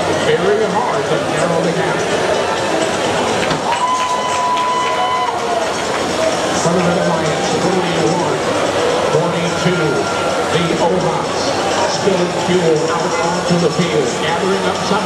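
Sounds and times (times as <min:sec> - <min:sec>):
crowd voices: 0:00.0 - 0:15.0
machine noise: 0:00.0 - 0:15.0
steady high tone: 0:04.4 - 0:15.0.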